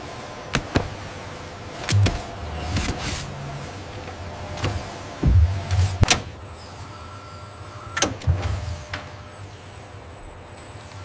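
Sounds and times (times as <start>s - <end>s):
robot arm motors whirring: 1.8s - 7.1s
low thud: 1.9s - 3.0s, 4.6s - 6.2s.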